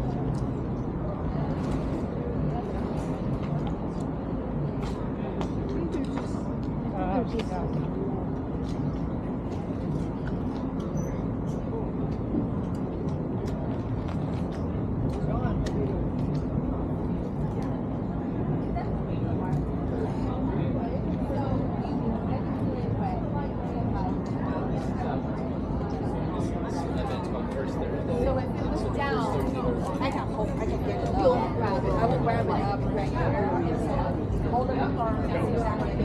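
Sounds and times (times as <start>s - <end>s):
city traffic rumble: 0.0s - 36.0s
people talking: 0.0s - 36.0s.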